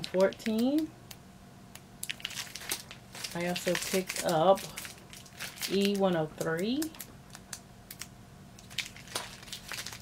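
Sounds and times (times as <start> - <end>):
plastic packaging crinkling: 2.0 - 10.0.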